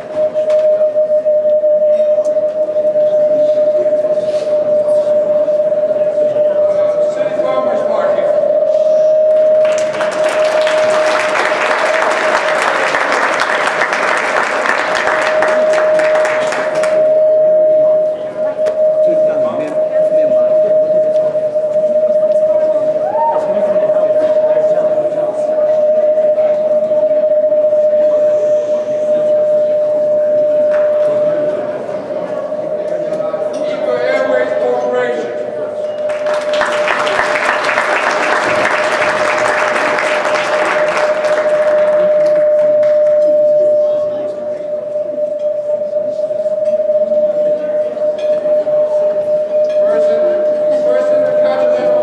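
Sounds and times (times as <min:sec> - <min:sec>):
steady ringing tone: 0:00.0 - 0:52.0
audience applauding: 0:09.5 - 0:17.0, 0:36.0 - 0:43.3.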